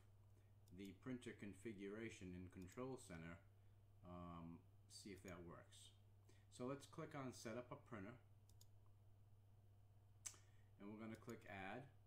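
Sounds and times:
computer mouse clicks: 2.5 - 2.8, 8.5 - 9.0, 11.1 - 11.5.

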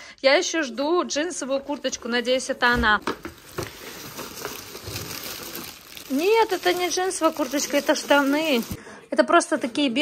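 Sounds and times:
plastic wrapping crinkling: 1.8 - 8.8
paper bag rustling: 3.2 - 8.8.

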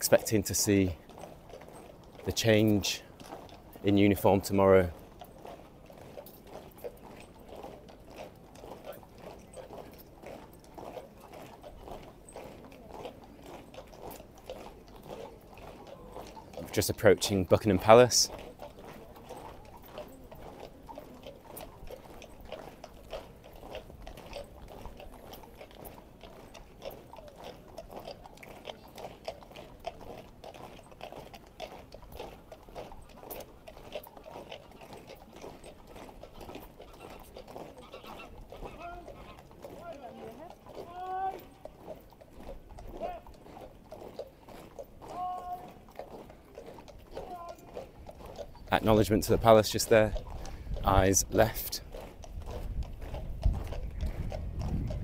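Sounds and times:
marching boots on road: 0.0 - 55.0.

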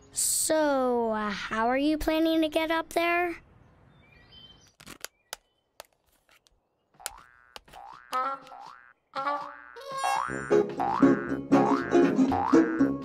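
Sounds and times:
springy boing sounds rising: 7.1 - 12.9.

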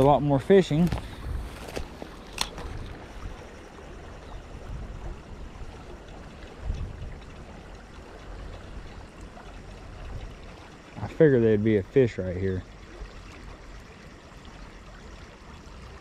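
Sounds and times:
creek water flowing: 0.0 - 16.0.

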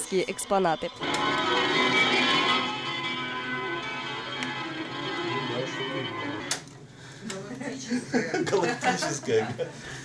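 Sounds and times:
music from tape recorder: 0.0 - 6.8.

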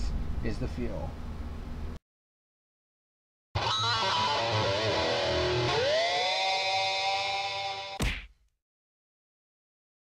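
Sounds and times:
distorted electric guitar: 3.6 - 8.0.

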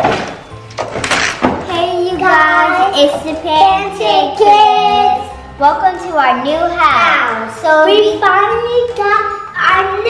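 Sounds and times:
children singing: 1.8 - 5.4.

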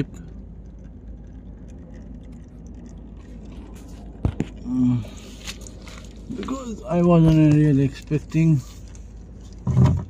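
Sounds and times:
low background rumble: 0.0 - 10.0
oil dripping: 0.0 - 10.0.

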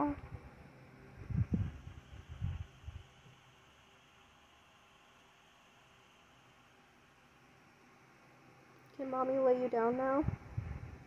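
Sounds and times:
faint steady hiss: 0.0 - 11.0
soft low bumps and rumbles: 1.2 - 3.0, 10.2 - 11.0.

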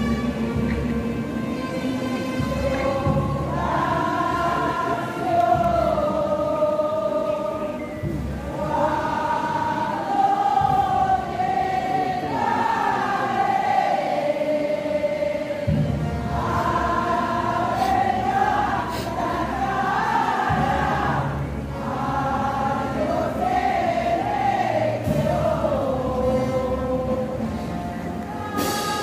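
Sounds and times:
choir singing a slow hymn: 0.0 - 29.0
deep low accompaniment: 0.0 - 29.0.

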